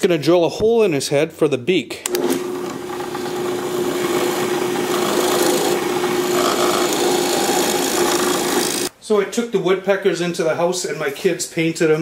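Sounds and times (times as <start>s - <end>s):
drill bit scraping wood: 2.1s - 8.9s
drill press motor hum: 2.1s - 8.9s.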